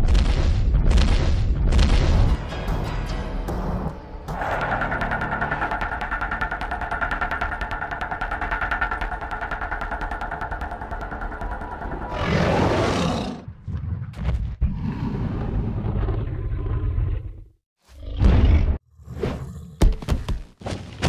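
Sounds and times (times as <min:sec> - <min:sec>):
dinosaur roar: 0:12.0 - 0:13.5.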